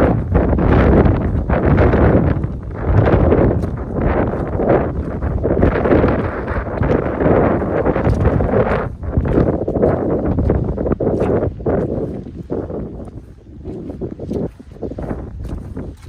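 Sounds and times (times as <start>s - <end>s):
boots walking through wet mud: 0.0s - 16.0s
wind buffeting microphone: 0.0s - 16.0s.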